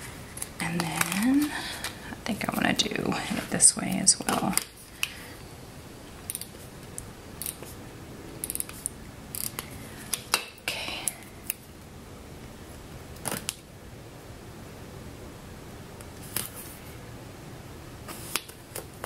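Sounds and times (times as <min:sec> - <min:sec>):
paper stickers crinkling and peeling: 0:00.3 - 0:02.5.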